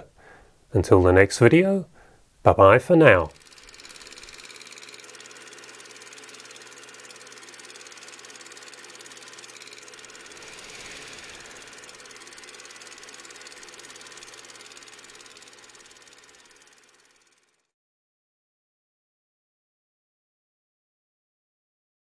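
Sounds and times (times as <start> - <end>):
film projector clattering: 3.3 - 17.7.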